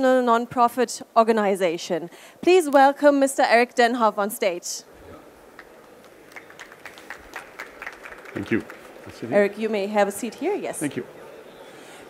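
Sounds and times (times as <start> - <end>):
light scattered applause: 5.5 - 9.6.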